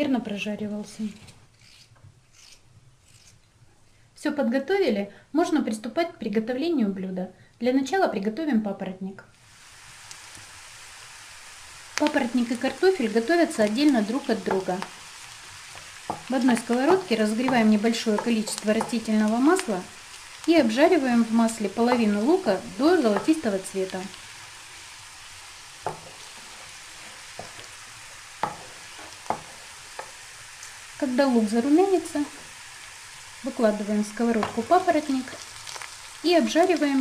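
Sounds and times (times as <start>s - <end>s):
onion sizzling in a frying pan: 9.4s - 37.0s
wooden spatula knocking on pan: 16.1s - 19.1s, 23.1s - 23.4s, 25.8s - 26.5s, 27.3s - 27.7s, 28.4s - 30.2s, 34.4s - 34.7s.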